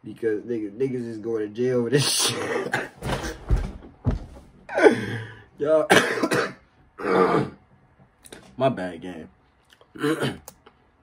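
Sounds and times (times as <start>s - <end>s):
man clearing his throat: 2.2s - 3.0s, 5.9s - 7.6s, 10.0s - 10.5s.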